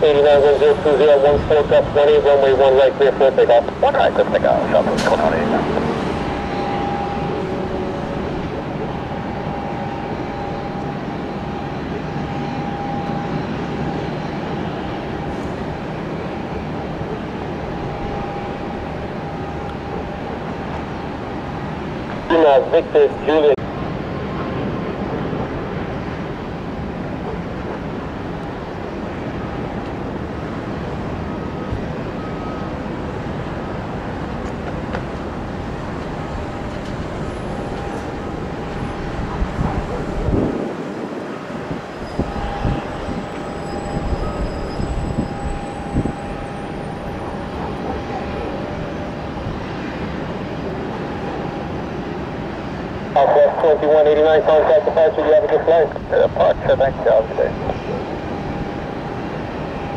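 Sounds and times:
radio speech: 0.0 - 7.1, 22.2 - 23.6, 53.1 - 58.2
distant jet engines rushing: 0.0 - 59.9
faint jet engine whine: 0.0 - 59.9.

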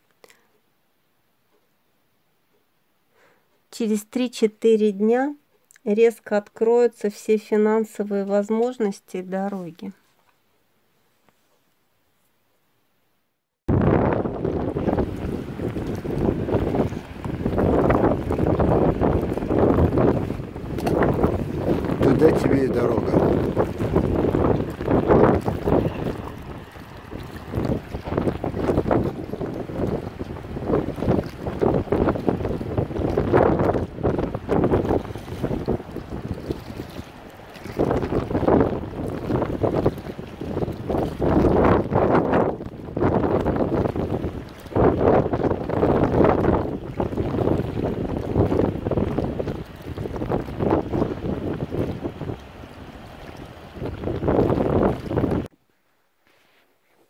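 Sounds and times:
small waves on choppy water: 13.7 - 55.5
wind buffeting microphone: 13.7 - 55.5.

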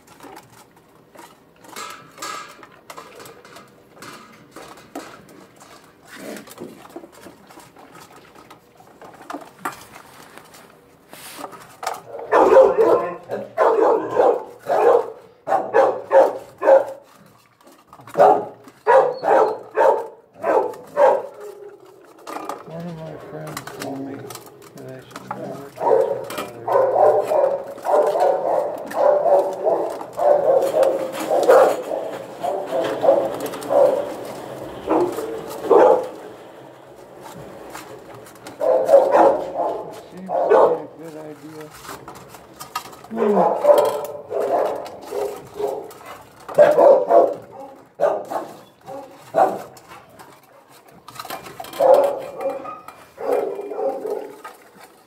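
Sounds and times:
dog eating from metal bowl: 0.0 - 55.0.

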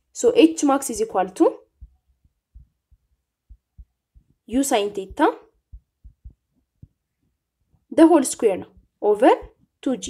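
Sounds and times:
stylus tapping on drawing tablet: 1.8 - 7.8.

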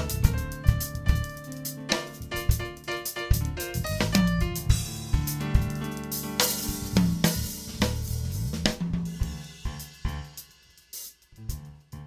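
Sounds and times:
keyboard: 0.0 - 9.4
electric bass: 0.0 - 10.4
drum kit playing: 0.0 - 12.0.

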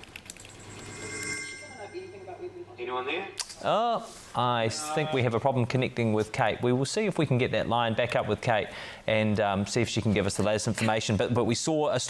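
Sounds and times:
steady low hum: 0.3 - 3.1
faint high electronic tones: 0.4 - 3.0.

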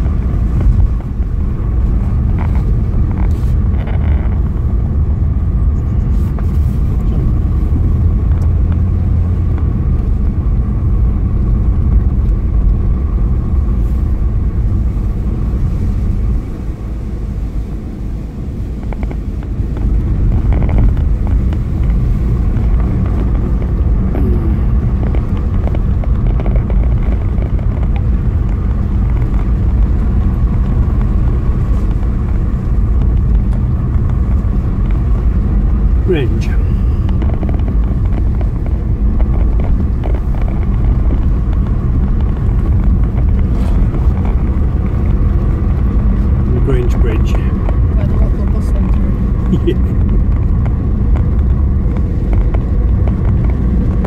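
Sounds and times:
car engine and tyres rumbling: 0.0 - 54.0.

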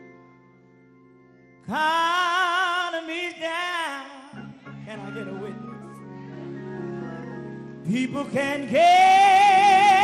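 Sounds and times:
gospel band sustained chords: 0.0 - 10.0
man singing loudly: 7.8 - 10.0.

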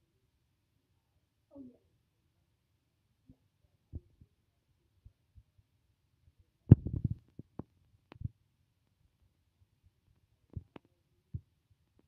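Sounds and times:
soft low thumps and clicks: 6.7 - 8.4, 10.1 - 12.0.

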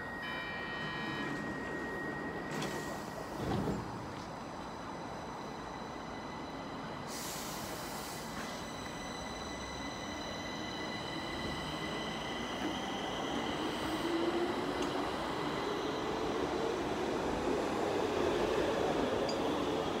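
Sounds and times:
train high whine: 0.0 - 20.0.

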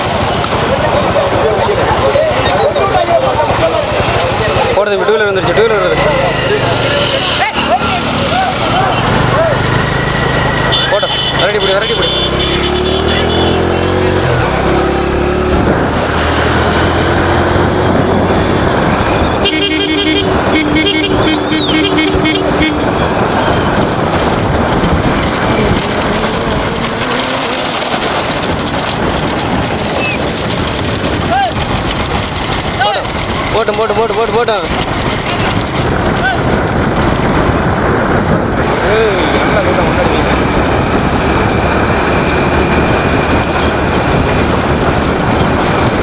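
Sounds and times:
motorcycle engines running: 0.0 - 46.0
voices shouting: 0.8 - 14.0
vehicle horn honking: 10.6 - 13.7, 19.4 - 23.7
wind noise on microphone: 13.0 - 46.0.

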